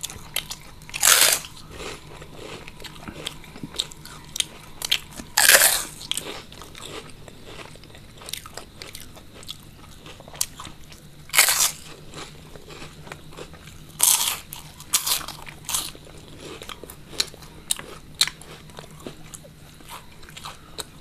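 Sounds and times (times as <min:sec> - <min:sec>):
chewing crackles: 0:00.0 - 0:21.0
crunching bites of crispy snacks: 0:00.0 - 0:21.0.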